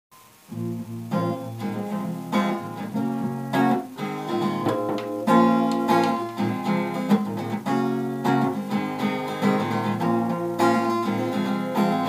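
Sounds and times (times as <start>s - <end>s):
acoustic guitar strumming: 0.2s - 12.0s.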